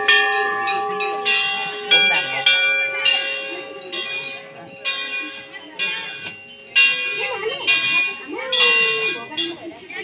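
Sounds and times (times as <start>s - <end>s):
brass bells ringing: 0.0s - 10.0s.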